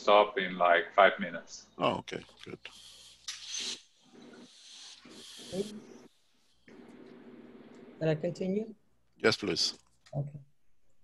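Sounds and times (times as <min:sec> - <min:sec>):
broken voice fragments: 0:00.0 - 0:02.7
breathy hisses: 0:04.5 - 0:06.0.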